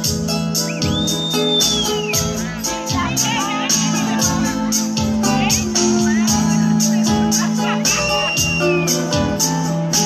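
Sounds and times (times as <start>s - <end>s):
drum beat with hi-hat: 0.0s - 10.0s
guitar: 0.0s - 10.0s
long high whistle: 0.6s - 2.2s, 8.0s - 9.1s.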